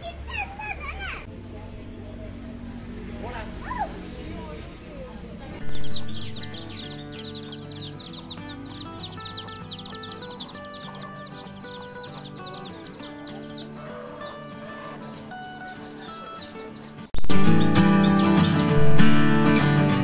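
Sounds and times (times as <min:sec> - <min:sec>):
chicks peeping rapidly: 0:05.6 - 0:19.3
background music: 0:05.6 - 0:20.0.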